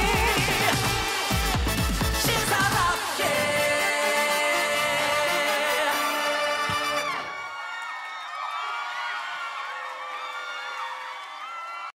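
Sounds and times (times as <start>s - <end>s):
studio crowd cheering and screaming: 2.3s - 12.0s.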